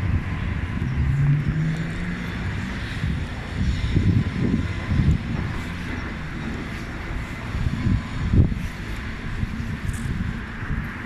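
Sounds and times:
engine hum: 0.0 - 11.0
traffic rumble: 0.0 - 11.0
wind buffeting on microphone: 0.0 - 11.0.

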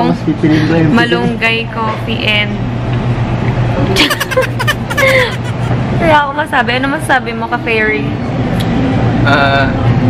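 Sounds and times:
low background hum: 0.0 - 10.0
woman giggling: 4.0 - 5.8.

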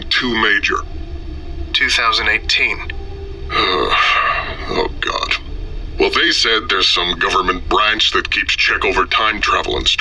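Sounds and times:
man's gruff hesitant voice: 3.5 - 9.4.

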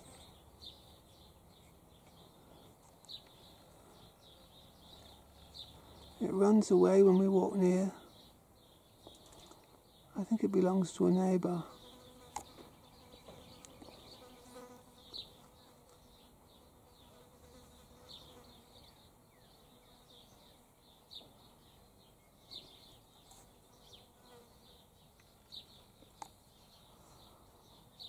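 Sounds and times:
fly buzzing faintly: 11.6 - 21.2, 23.2 - 25.0.

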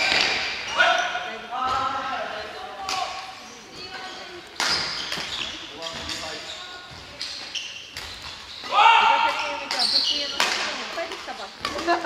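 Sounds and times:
rackets hitting shuttlecock: 0.0 - 0.6, 4.4 - 6.2, 7.1 - 12.0
voices: 8.6 - 12.0.

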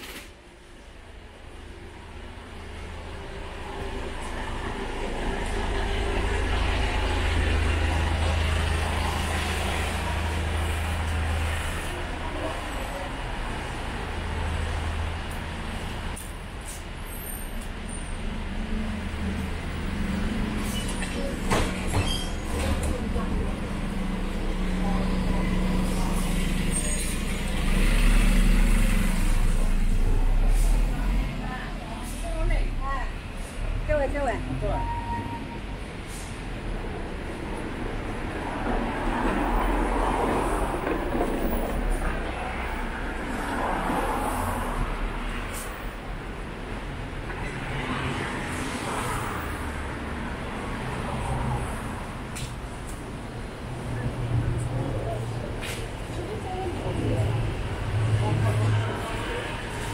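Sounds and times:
vehicle engines passing: 0.4 - 59.9.

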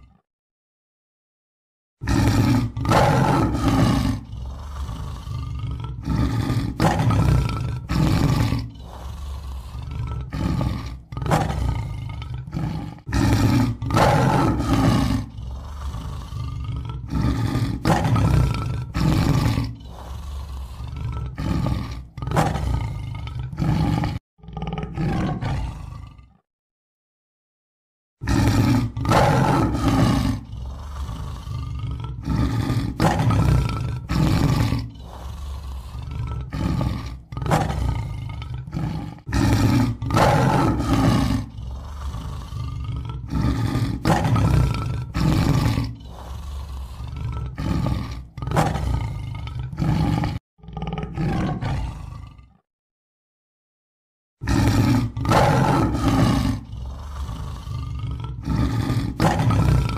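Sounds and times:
big cat roaring: 2.0 - 26.4, 28.2 - 52.6, 54.4 - 59.9.

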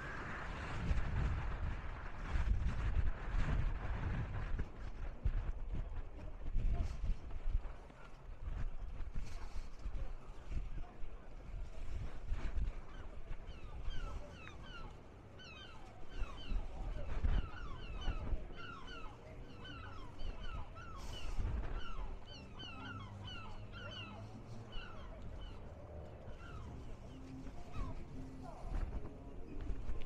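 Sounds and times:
low outdoor rumble: 0.0 - 30.0
chorus of bird calls: 11.8 - 30.0.

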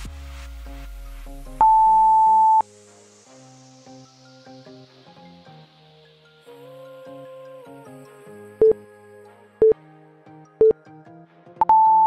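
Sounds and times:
background music: 0.0 - 12.0
timer beeps: 1.6 - 2.6, 11.6 - 12.0.

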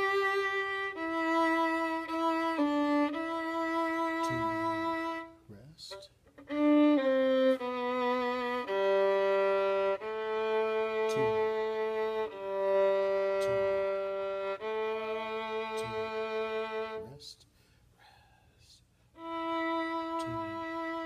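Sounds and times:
solo violin melody: 0.0 - 17.2, 19.1 - 21.0.

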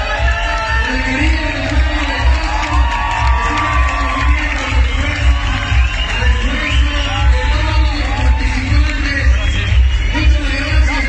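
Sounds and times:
crowd cheering and clapping: 0.0 - 11.0
music with bass beat: 0.0 - 11.0.

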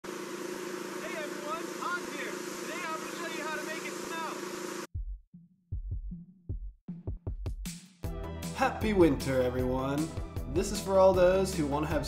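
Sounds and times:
machinery running: 0.0 - 4.9
snow gun hissing and humming: 0.0 - 4.9.

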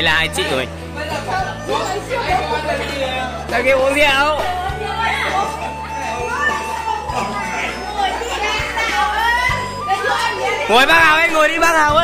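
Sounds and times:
background music: 0.0 - 12.0
people talking and laughing: 0.0 - 12.0.

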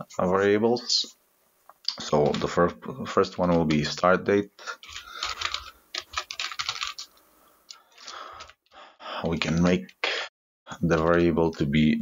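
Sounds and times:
typing on computer keyboard: 4.8 - 7.1, 8.0 - 8.6.

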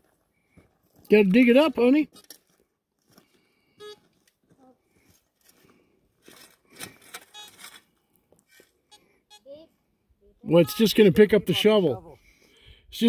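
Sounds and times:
metal detector beeps: 3.8 - 4.0, 7.2 - 7.7, 10.5 - 11.2
shovel digging in gravelly dirt: 6.2 - 7.9.

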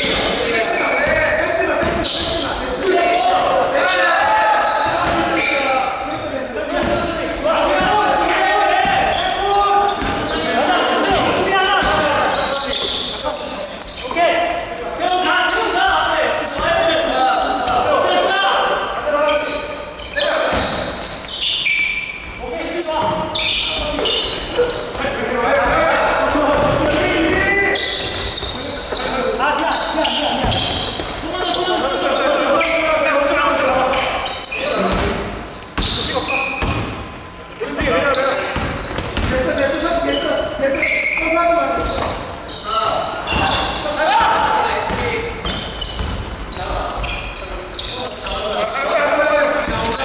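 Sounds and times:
players calling out: 0.0 - 50.0.

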